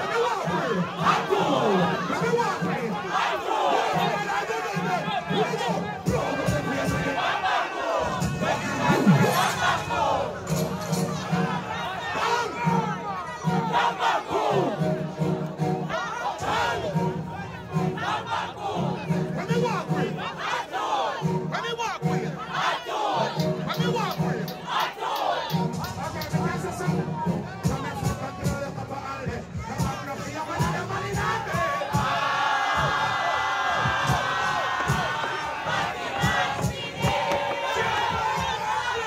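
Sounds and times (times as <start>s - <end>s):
crowd shouting and cheering: 0.0s - 39.0s
music with pulsing bass: 8.0s - 20.4s.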